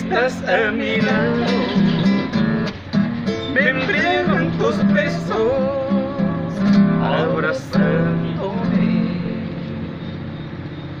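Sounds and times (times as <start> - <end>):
acoustic guitar chord ringing: 0.0 - 10.5.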